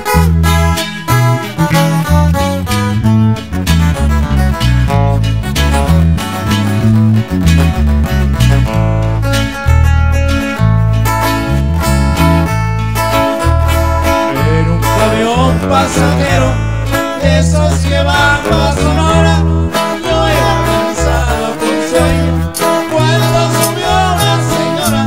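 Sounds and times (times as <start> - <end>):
acoustic guitar lead melody: 0.0 - 25.0
deep bass line: 0.0 - 25.0.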